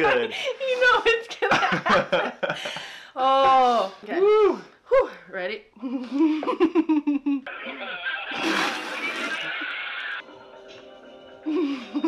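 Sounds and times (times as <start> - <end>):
voices: 7.5 - 10.2
music: 9.6 - 12.0.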